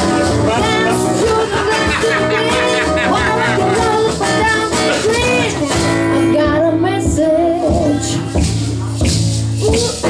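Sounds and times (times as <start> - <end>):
acoustic guitars playing chords: 0.0 - 10.0
woman singing: 0.3 - 8.4.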